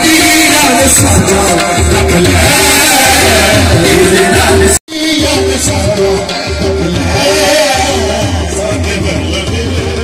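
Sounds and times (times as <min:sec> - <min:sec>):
harmonium melody: 0:00.0 - 0:10.0.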